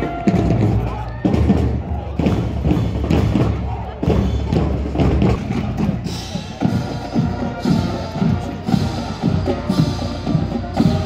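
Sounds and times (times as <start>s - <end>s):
bass drum beats: 0.0s - 11.0s
marching band playing: 0.0s - 11.0s.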